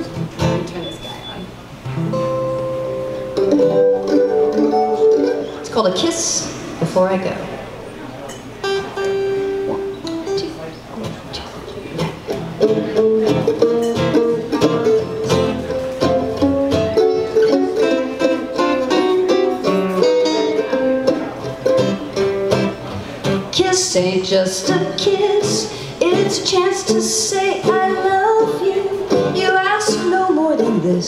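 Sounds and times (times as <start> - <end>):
acoustic guitars strumming: 0.0 - 31.0
plucked string instrument picking: 1.8 - 6.6, 8.2 - 31.0.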